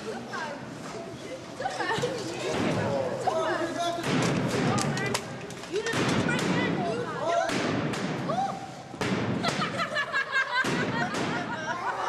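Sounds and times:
sharp thuds: 0:08.9 - 0:09.8.

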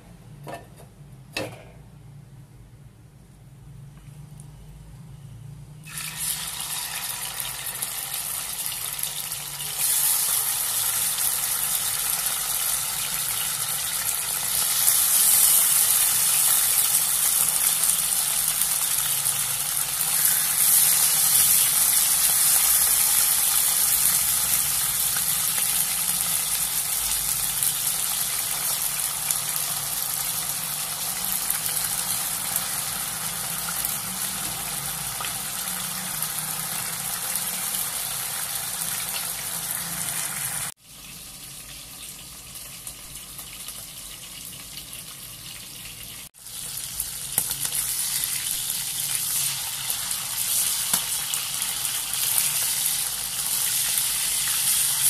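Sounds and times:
pork sizzling in oil: 0:05.8 - 0:55.0.

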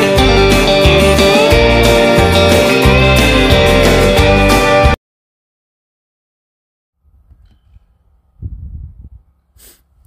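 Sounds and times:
wind buffeting microphone: 0:08.3 - 0:09.4.

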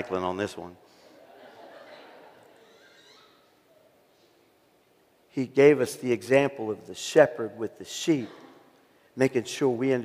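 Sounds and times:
congregation murmuring: 0:00.0 - 0:04.1
faint laughter: 0:01.1 - 0:03.5.

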